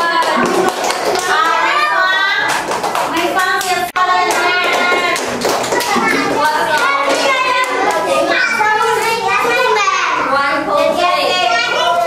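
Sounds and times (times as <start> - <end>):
hand clapping: 0.0 - 1.6, 2.4 - 8.3.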